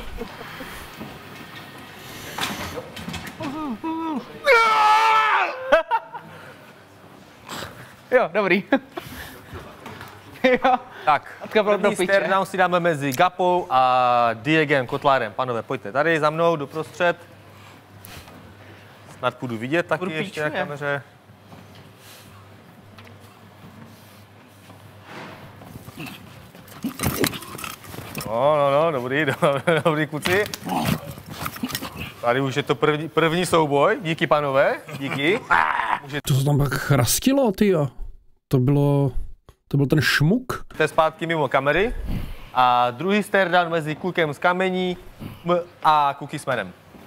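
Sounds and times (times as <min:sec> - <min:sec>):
men grunting: 0:03.4 - 0:05.9, 0:30.2 - 0:32.2, 0:34.7 - 0:36.2
person making wordless vocal sounds: 0:35.4 - 0:36.2.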